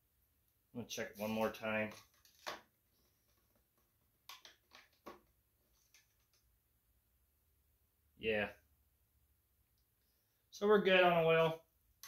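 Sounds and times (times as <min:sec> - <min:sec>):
faint plastic clicks and handling: 0:01.9 - 0:06.5.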